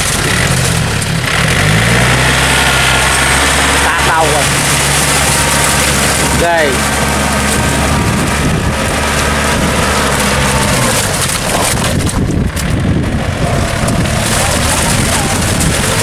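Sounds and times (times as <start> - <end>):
tractor engine running: 0.0 - 16.0
wind noise on microphone: 4.5 - 16.0.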